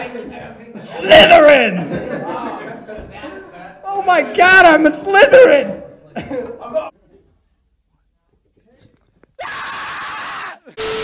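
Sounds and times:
person screaming: 9.4 - 11.0
tv static: 10.7 - 11.0.

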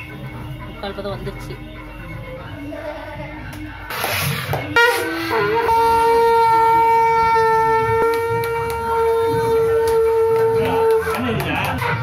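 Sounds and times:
conch shell blown: 4.2 - 11.2.

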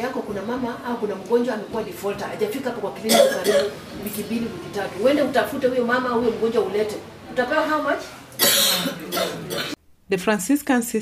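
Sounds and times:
person coughing loudly: 3.1 - 3.8, 8.4 - 9.8.

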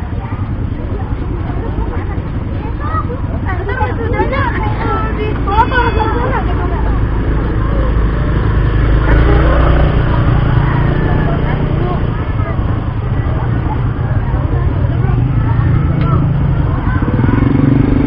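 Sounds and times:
people talking indistinctly: 0.0 - 18.0.

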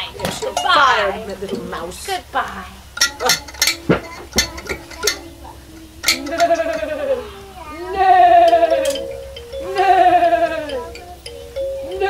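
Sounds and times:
plucked instrument notes: 0.0 - 12.0
held note: 2.8 - 12.0.

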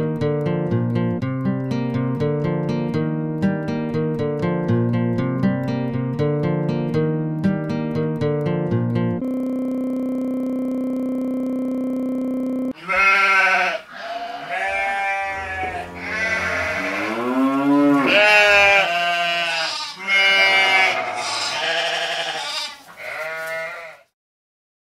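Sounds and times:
sheep bleating: 12.8 - 24.1.

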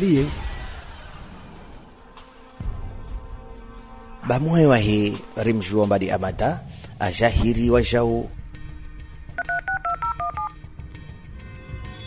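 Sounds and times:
telephone keypad beeps: 9.4 - 10.6.

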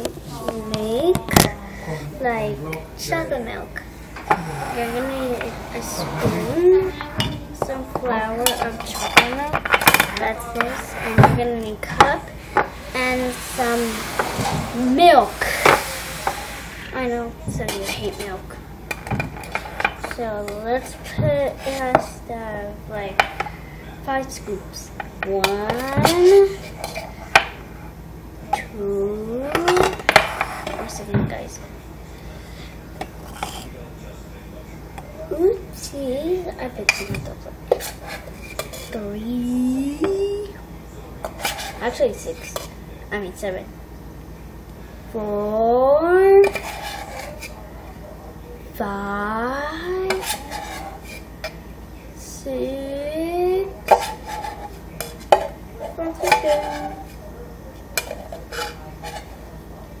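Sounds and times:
low steady hum: 0.0 - 60.0
child's wordless vocal sounds: 4.3 - 7.2.

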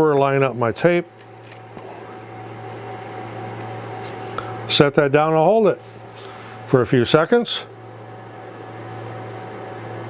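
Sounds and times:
low mechanical fan hum: 0.0 - 10.0.

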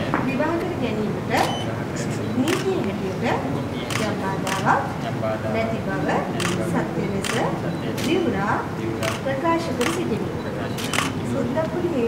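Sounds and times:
person speaking: 0.0 - 12.0
camera shutter clicking: 3.9 - 4.7, 7.2 - 8.2, 9.0 - 9.2, 9.8 - 10.1, 10.8 - 11.2.

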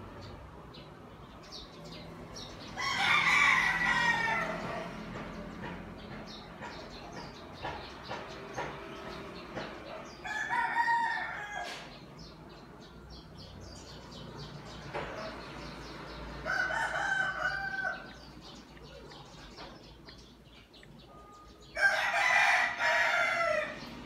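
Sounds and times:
rooster crowing: 2.8 - 5.0, 10.2 - 11.9, 16.4 - 18.2, 21.8 - 23.9.

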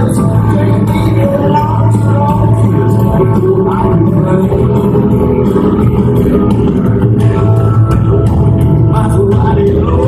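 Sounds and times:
live country-rock band: 0.0 - 10.0.

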